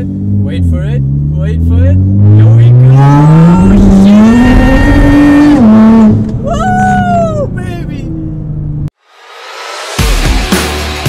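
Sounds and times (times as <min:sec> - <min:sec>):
car engine accelerating hard: 0:00.0 - 0:06.5
man whooping: 0:06.4 - 0:07.7.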